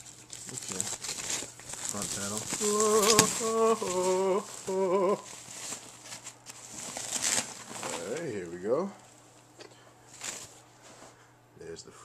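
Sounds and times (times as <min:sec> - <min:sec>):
packaging sheet crinkling: 0:00.0 - 0:08.6, 0:10.1 - 0:10.6.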